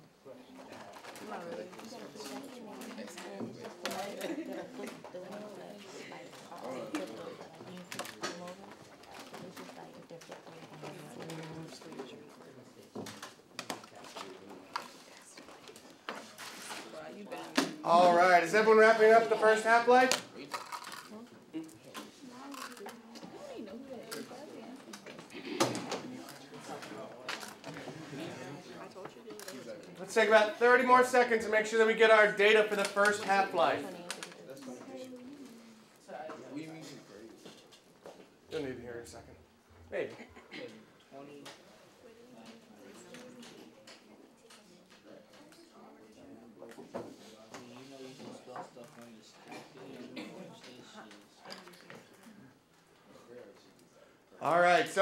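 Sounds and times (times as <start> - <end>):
murmur of students' voices: 0.0 - 55.0.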